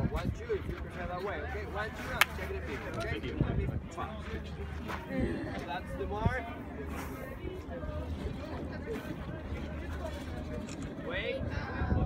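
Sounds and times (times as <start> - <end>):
wind on microphone: 0.0 - 1.2, 5.1 - 12.0
onlookers' voices: 0.0 - 12.0.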